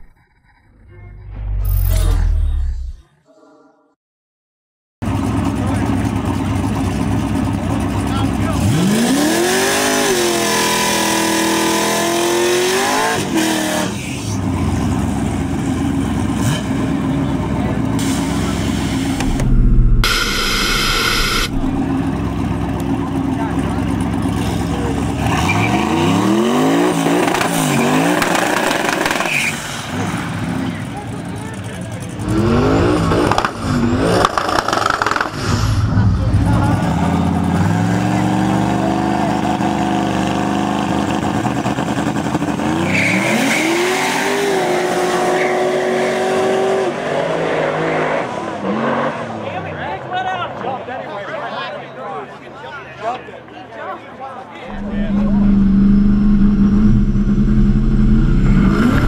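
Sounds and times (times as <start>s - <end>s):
car engines revving: 5.1s - 49.8s, 54.7s - 59.0s.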